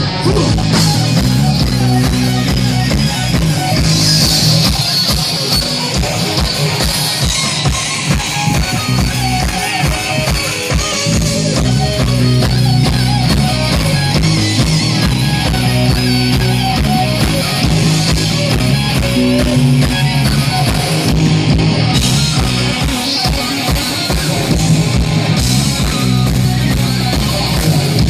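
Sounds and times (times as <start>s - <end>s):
bass guitar: 0.0s - 28.0s
distorted electric guitars: 0.0s - 28.0s
live rock band: 0.0s - 28.0s
pounding drum kit: 0.0s - 28.0s.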